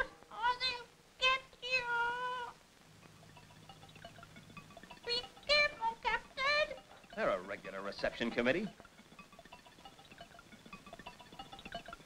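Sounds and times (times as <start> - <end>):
high-pitched wavering cries: 3.1 - 12.0.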